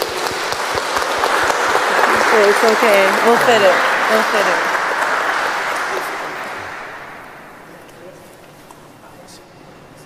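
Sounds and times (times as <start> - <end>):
congregation applauding: 0.0 - 8.2.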